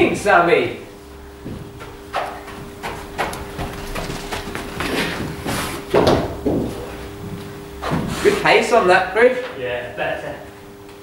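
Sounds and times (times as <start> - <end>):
steady low hum: 0.0 - 11.0
footsteps on artificial turf: 1.4 - 8.1.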